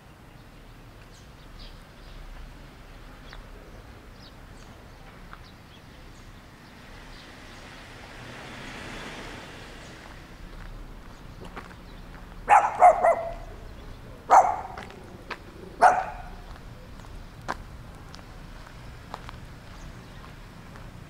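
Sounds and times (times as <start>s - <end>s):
dog barking with echo: 12.5s - 13.6s, 14.3s - 15.2s, 15.8s - 16.4s.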